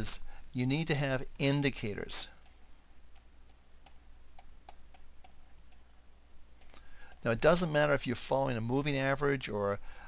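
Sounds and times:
stylus tapping drawing tablet: 0:02.4 - 0:05.9, 0:06.6 - 0:07.8.

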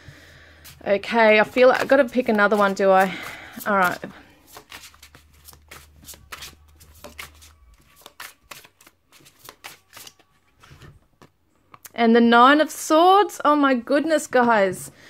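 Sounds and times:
cards being shuffled: 0:01.4 - 0:11.8.

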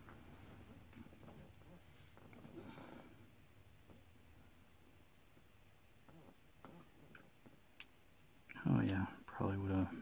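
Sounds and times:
faint ticks and clicks: 0:04.8 - 0:09.9.

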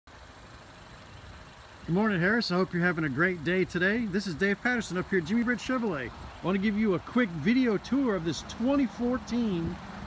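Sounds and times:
man's voice: 0:01.9 - 0:09.8.

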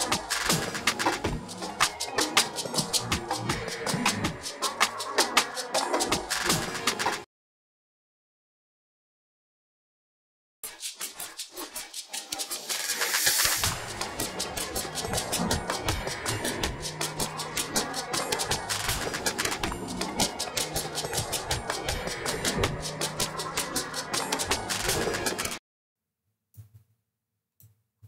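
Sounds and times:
hissy rhythmic percussion wash: 0:00.0 - 0:07.2, 0:10.6 - 0:25.6.

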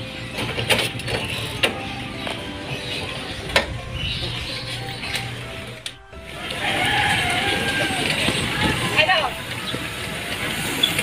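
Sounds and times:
metal cart rumbling: 0:00.0 - 0:11.0.

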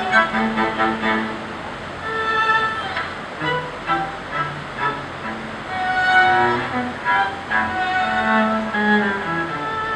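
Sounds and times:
cello playing: 0:00.0 - 0:09.9
violin playing: 0:00.0 - 0:09.9.

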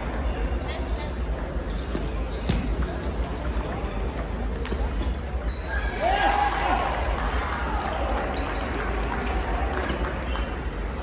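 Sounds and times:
table tennis balls clicking: 0:00.0 - 0:05.6, 0:07.9 - 0:11.0.

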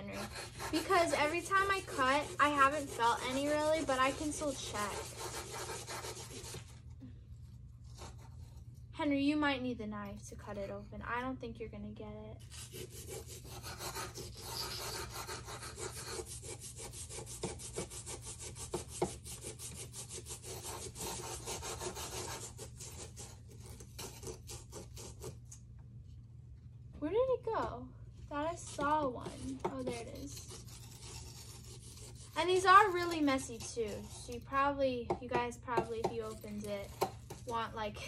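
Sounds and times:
knife scraping crumbly block: 0:00.0 - 0:06.8, 0:12.4 - 0:25.4, 0:28.6 - 0:34.6, 0:35.4 - 0:37.6.

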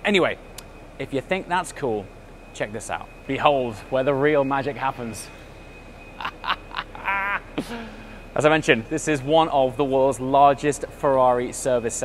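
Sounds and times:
low hum: 0:00.0 - 0:12.0
man laughing: 0:06.2 - 0:08.2.

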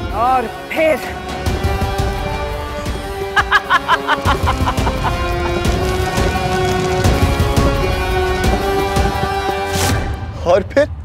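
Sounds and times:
dramatic background music: 0:00.0 - 0:11.0
woman cackling laugh: 0:03.4 - 0:05.8.

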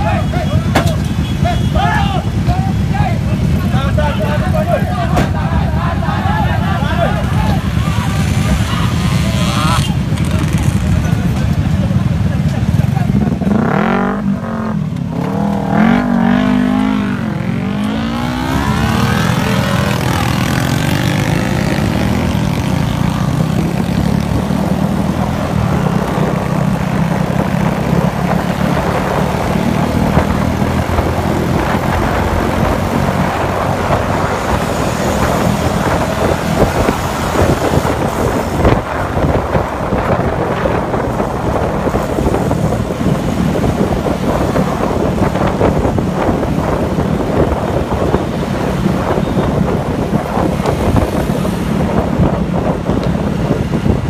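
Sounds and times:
motor scooter engines revving: 0:00.0 - 0:54.0
road noise: 0:00.0 - 0:54.0
wind noise: 0:13.8 - 0:54.0.

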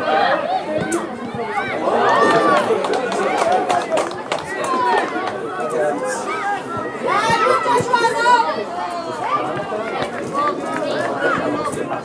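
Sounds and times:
children shouting: 0:00.0 - 0:12.0.

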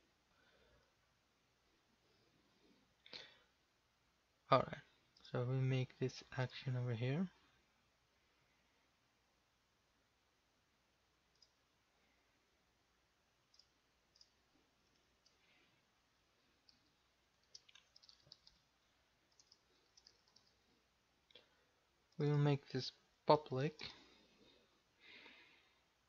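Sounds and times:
mouse clicks: 0:13.5 - 0:15.4, 0:16.6 - 0:18.6, 0:19.3 - 0:20.6
computer keyboard typing: 0:17.4 - 0:18.7, 0:19.3 - 0:20.6.

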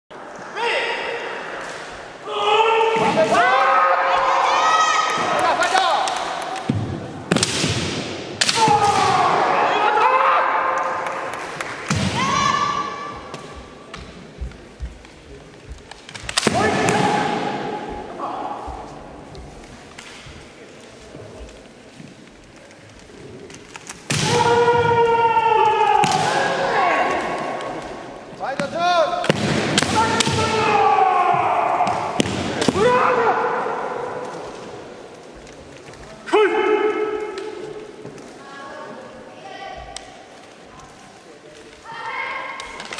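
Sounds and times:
fighters yelling: 0:29.8 - 0:34.2.

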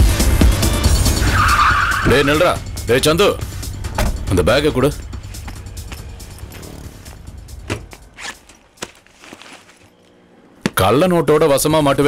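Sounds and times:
soft background music: 0:01.2 - 0:12.0
backpack rustling: 0:05.2 - 0:10.8.

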